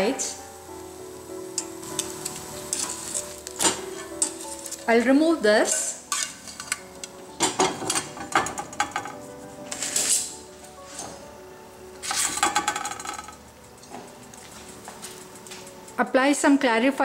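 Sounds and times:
soft background music: 0.0 - 17.0.

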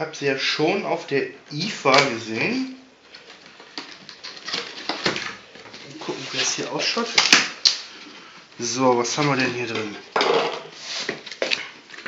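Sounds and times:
paper and packaging rustling: 1.8 - 12.0.

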